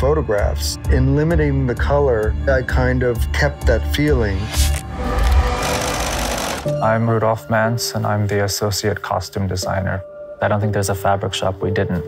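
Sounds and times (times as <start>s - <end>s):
sewing machine stitching: 5.1s - 6.7s.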